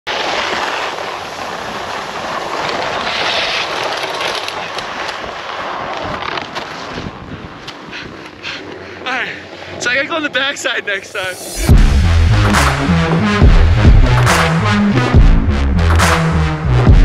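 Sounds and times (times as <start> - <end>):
snowboard scraping over snow: 0.1 - 13.9
wind on microphone: 1.2 - 9.1.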